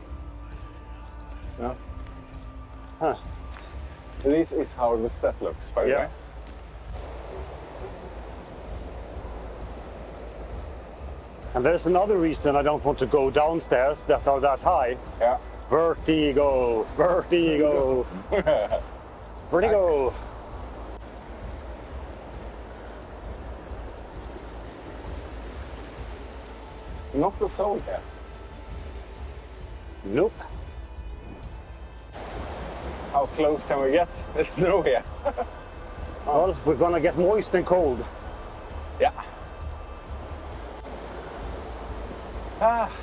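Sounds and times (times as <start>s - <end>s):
deep rumble: 0.0s - 43.0s
waterfall and stream rushing: 0.0s - 43.0s.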